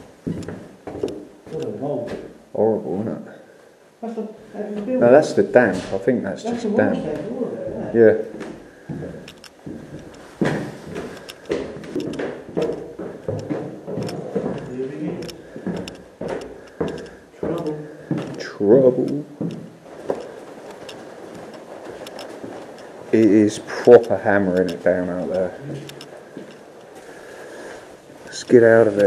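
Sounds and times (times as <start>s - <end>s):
footsteps in a corridor: 0.0s - 2.6s, 4.4s - 29.0s.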